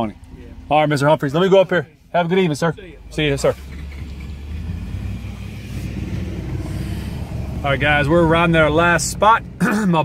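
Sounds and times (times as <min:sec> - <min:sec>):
engine and tyre rumble: 0:00.0 - 0:10.0.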